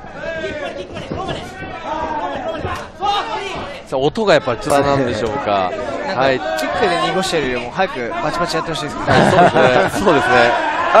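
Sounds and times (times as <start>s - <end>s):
voices talking over one another: 0.0s - 11.0s.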